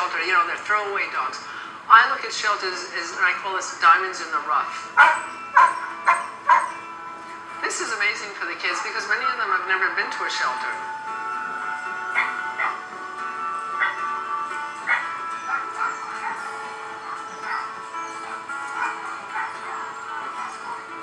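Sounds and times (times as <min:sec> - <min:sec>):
background music: 0:00.0 - 0:21.0
dogs barking: 0:04.9 - 0:07.0, 0:11.9 - 0:21.0.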